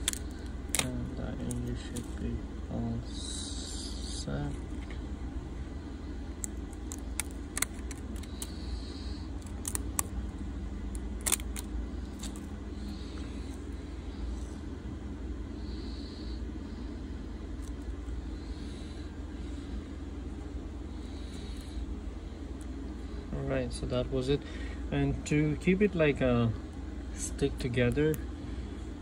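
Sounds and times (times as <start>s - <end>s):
steady low hum: 0.0s - 29.0s
phone parts clicking: 6.4s - 8.4s, 9.4s - 10.1s, 10.9s - 12.4s.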